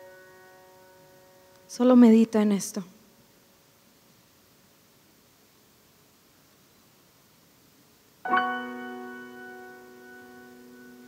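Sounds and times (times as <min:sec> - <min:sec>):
soft keyboard chord: 0:08.3 - 0:11.0.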